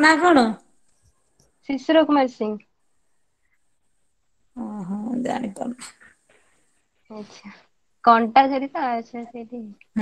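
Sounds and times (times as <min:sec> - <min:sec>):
woman speaking over video call: 0:00.0 - 0:00.6, 0:04.6 - 0:06.1.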